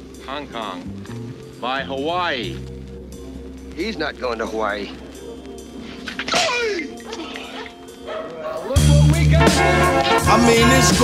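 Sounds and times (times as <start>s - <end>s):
faint music bed: 0.0s - 11.0s
hip-hop beat with heavy bass: 0.8s - 11.0s
dog yelping and whimpering: 7.0s - 8.8s.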